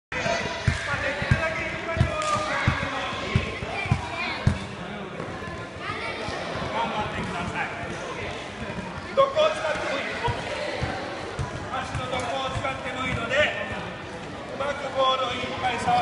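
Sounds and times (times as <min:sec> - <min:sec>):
children chattering: 0:02.5 - 0:13.2.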